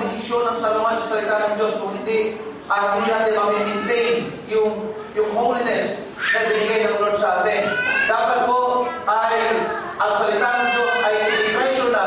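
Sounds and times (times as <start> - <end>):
preacher talking: 0.0 - 12.0.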